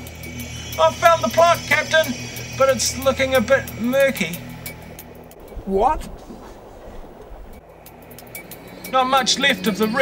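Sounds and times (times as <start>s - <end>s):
faint low hum: 5.4s - 7.7s.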